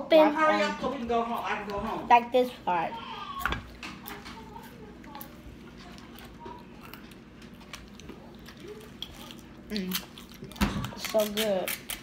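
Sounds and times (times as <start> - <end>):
children chewing: 0.1 - 12.0.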